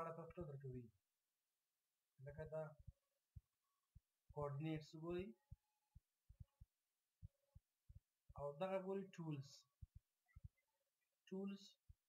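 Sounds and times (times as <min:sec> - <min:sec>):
faint low thumps: 0:02.6 - 0:08.4.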